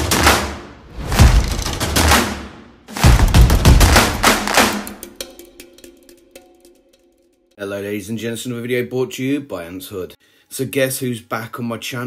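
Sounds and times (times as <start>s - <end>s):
loud drum hits: 0.0s - 5.5s.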